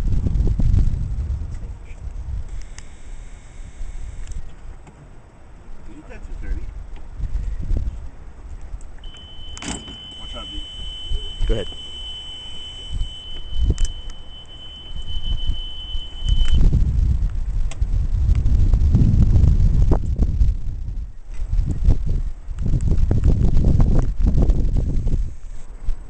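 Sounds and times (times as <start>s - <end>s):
wind rumbling on microphone: 0.0s - 26.0s
microphone handling noise: 8.7s - 26.0s
high-pitched electronic tone: 9.0s - 16.6s.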